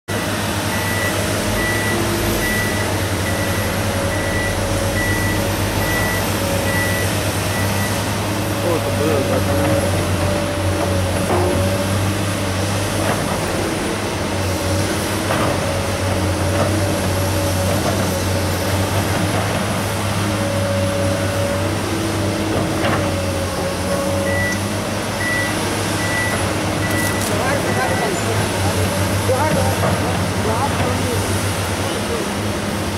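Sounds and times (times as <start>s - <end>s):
diesel excavator engine: 0.1s - 32.9s
electronic warning beep: 0.7s - 8.0s, 24.2s - 24.6s, 25.2s - 28.2s.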